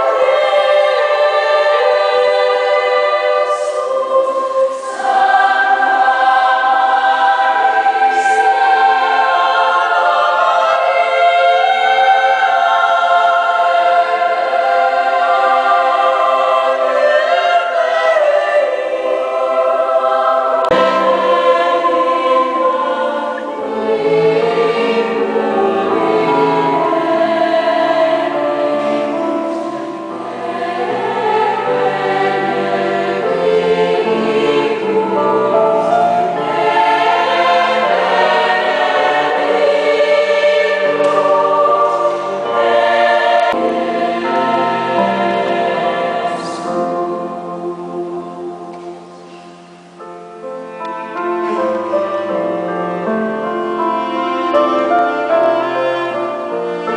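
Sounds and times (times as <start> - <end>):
large choir of young voices: 0.0 - 56.9
low cello line: 19.3 - 56.9.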